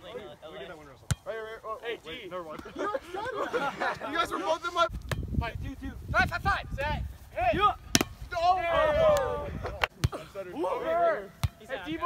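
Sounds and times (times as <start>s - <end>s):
wind rumble on microphone: 4.9s - 9.9s
teenage boys shouting: 7.4s - 9.8s, 10.4s - 12.0s
hand hitting volleyball: 7.9s - 8.2s.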